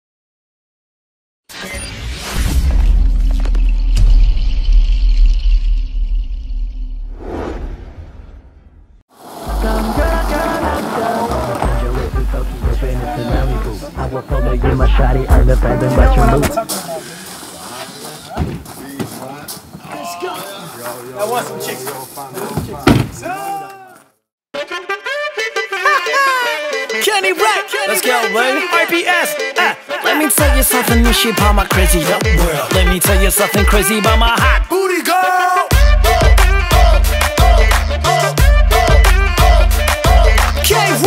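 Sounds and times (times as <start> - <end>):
deep bass rumble: 2.8 - 16.6
men talking: 10.4 - 23.9
car door slamming: 22.6 - 23.3.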